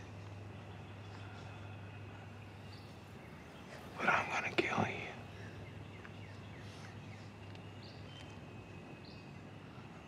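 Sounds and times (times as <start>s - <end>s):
steady low hum: 0.0s - 10.0s
man whispering: 3.7s - 5.5s.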